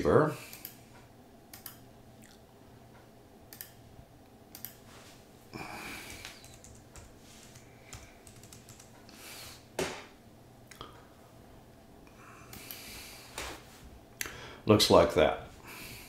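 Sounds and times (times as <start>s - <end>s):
soft keyboard typing: 1.5s - 1.8s, 3.5s - 3.8s, 4.5s - 4.8s, 6.0s - 9.1s
soft rush of noise: 2.2s - 16.0s.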